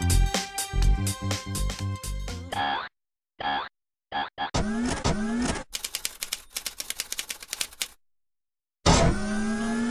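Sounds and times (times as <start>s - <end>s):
rapid typewriter-like clicking: 5.6s - 8.0s.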